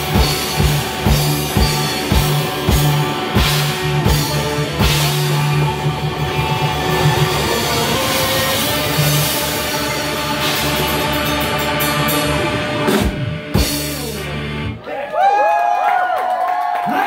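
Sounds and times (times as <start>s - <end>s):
rock band playing: 0.0s - 14.9s.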